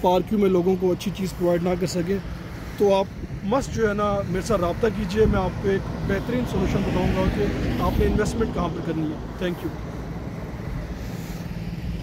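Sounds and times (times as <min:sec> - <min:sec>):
distant road traffic rumble: 0:00.0 - 0:12.0.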